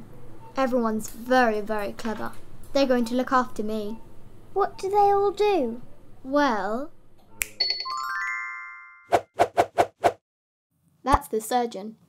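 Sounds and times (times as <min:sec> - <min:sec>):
chime-like tones: 0:07.6 - 0:09.1.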